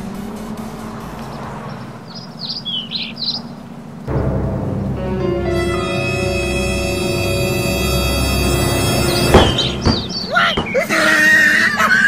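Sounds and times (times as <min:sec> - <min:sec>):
shrill high-pitched cry: 0:09.3 - 0:12.0.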